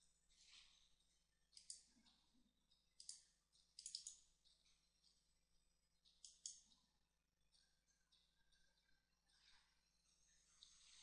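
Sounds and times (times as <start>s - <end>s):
computer mouse clicks: 1.5s - 2.2s, 3.0s - 5.2s, 6.0s - 6.9s.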